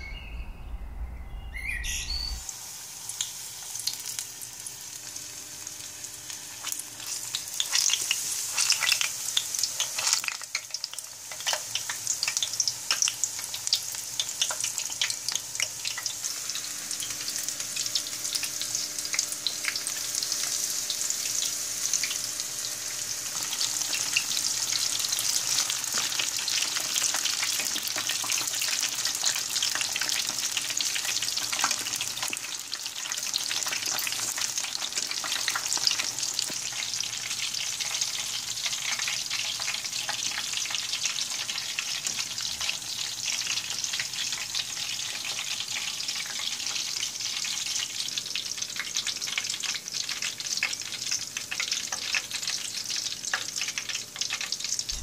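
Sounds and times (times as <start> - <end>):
battered food deep-frying in oil: 1.9 - 55.0.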